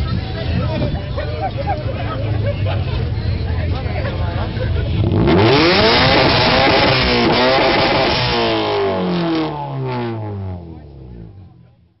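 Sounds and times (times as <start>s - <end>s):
car engine falling in pitch: 4.9s - 11.5s.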